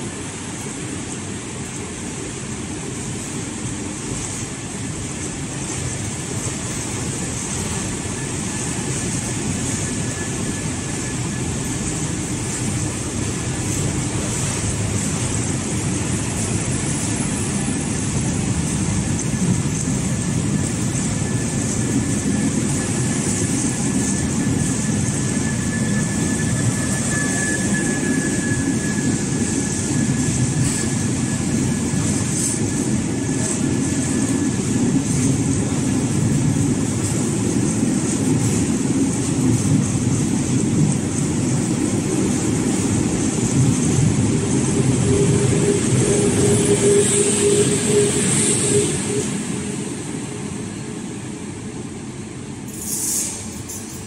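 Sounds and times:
train wheels rumbling past: 0.0 - 54.0
thin high whine: 8.0 - 35.4, 42.8 - 51.2.

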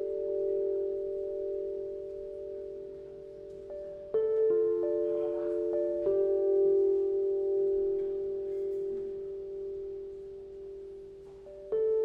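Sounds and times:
bell-like keyboard chord: 0.0 - 12.0.

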